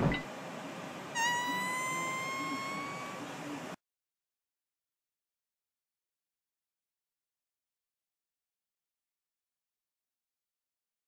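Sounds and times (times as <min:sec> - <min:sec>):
high squeaky fart sound: 0:01.2 - 0:03.2.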